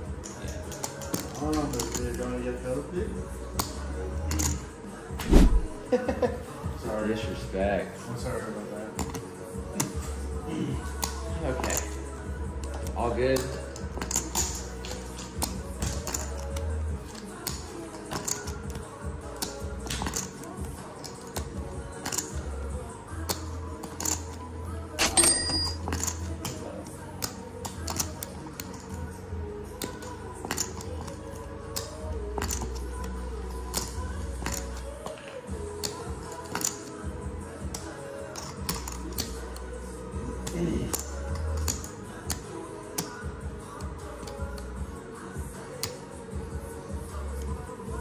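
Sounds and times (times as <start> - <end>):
background music: 0.0 - 48.0.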